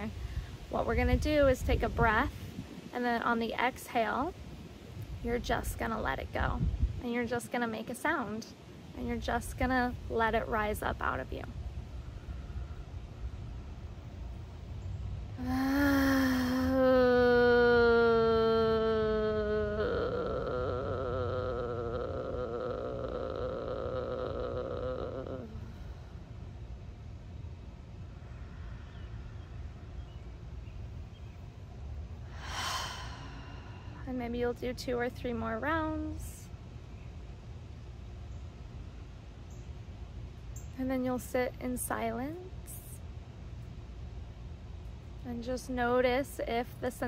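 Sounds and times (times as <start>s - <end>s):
woman's sustained vocal tone: 15.4s - 26.3s, 32.3s - 34.2s.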